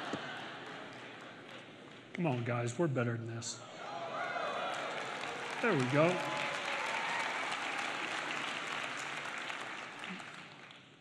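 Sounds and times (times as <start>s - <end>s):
audience applauding: 0.0s - 2.1s, 4.1s - 11.0s.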